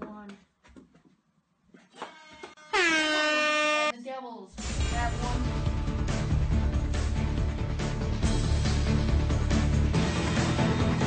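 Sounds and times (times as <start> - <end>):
hockey horn: 2.0 - 3.9.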